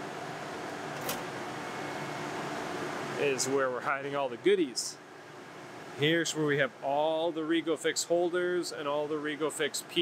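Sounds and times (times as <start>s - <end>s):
machine shop hum: 0.0s - 10.0s.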